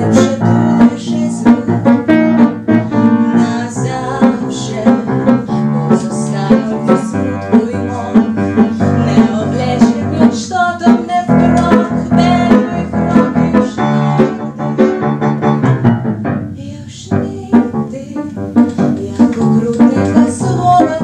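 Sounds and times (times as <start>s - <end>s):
woman singing: 0.0s - 14.7s, 16.6s - 21.0s
upright piano accompaniment: 0.0s - 21.0s.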